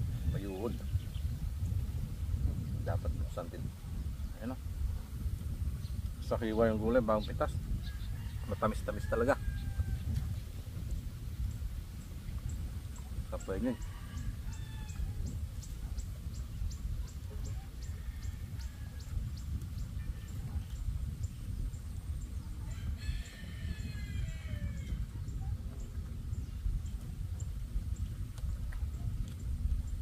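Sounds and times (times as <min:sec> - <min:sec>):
wind rumble on microphone: 0:00.0 - 0:30.0
rooster crowing: 0:07.9 - 0:10.0, 0:13.4 - 0:15.2, 0:22.7 - 0:25.0.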